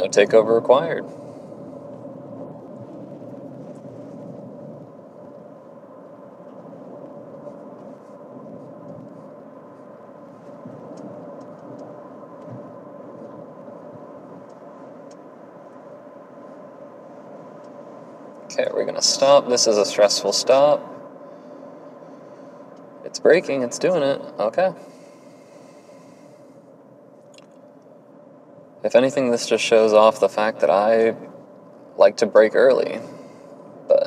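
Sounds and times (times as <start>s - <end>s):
faint steady tone: 0.0s - 34.0s
road and tyre noise in car cabin: 0.0s - 34.0s.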